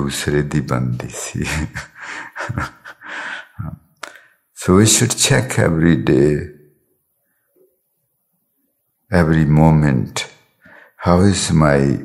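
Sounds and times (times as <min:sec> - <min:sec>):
man speaking: 0:00.0 - 0:03.9, 0:04.6 - 0:06.7, 0:09.1 - 0:10.3, 0:11.0 - 0:12.0
man breathing close to microphone: 0:02.0 - 0:04.5, 0:10.6 - 0:11.0.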